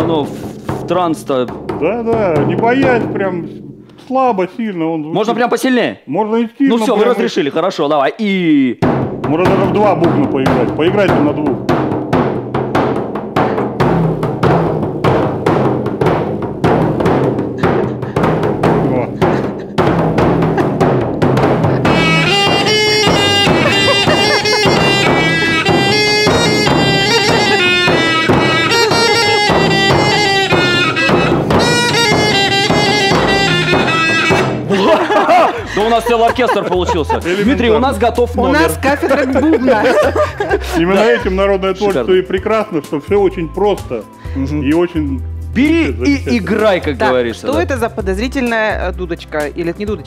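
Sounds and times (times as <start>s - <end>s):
frame drums beating: 0.0s - 4.7s, 8.8s - 44.2s
wind pipe high melody: 21.8s - 34.8s.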